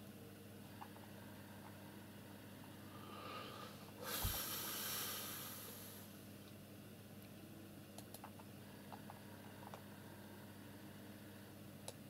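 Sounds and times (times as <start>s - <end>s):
faint steady hum: 0.0s - 12.0s
forceful nasal exhale: 3.0s - 6.1s.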